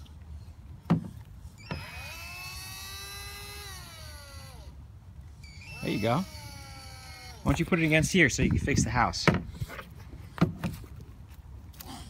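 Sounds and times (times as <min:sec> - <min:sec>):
toy drill motor whirring: 0:01.6 - 0:04.8, 0:05.4 - 0:07.9.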